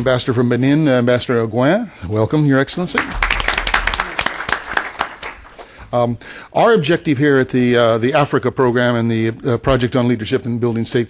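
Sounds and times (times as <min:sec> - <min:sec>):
audience applauding: 0:02.9 - 0:05.6.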